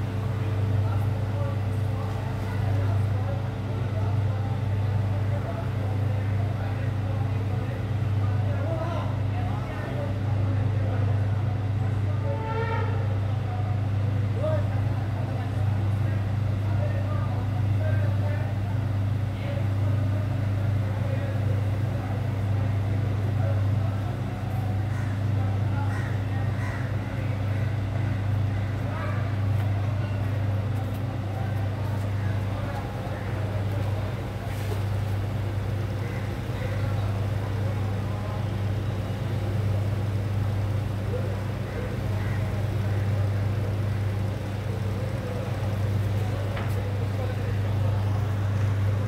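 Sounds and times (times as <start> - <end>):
machine humming with steady tones: 0.0 - 49.0
people talking: 0.0 - 49.0.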